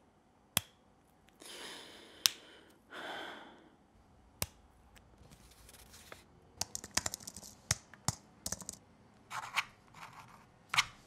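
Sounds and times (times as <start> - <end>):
keyboard typing: 6.6 - 8.8.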